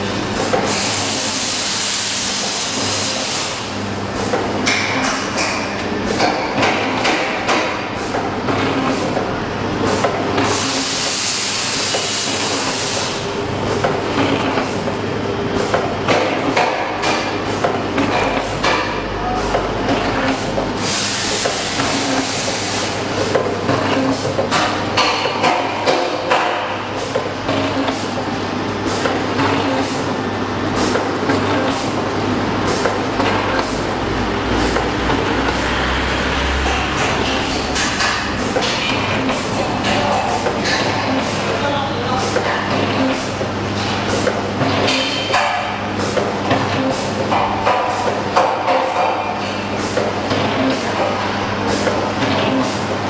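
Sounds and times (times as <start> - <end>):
packaging machines humming: 0.0 - 53.0
machine hissing: 0.5 - 3.8, 10.4 - 13.3, 20.4 - 23.4
machine clicking and knocking: 4.2 - 9.3, 36.6 - 41.4.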